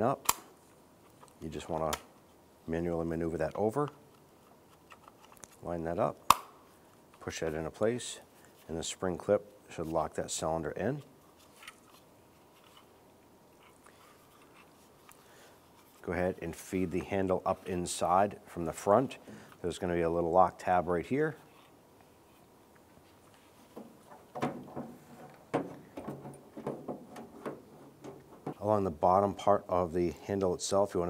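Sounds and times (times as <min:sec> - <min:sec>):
handle and lock clicks and rattles: 0:23.8 - 0:28.6.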